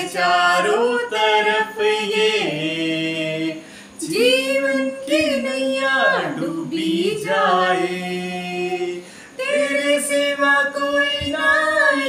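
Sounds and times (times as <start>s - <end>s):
man and woman singing unaccompanied: 0.0s - 12.0s.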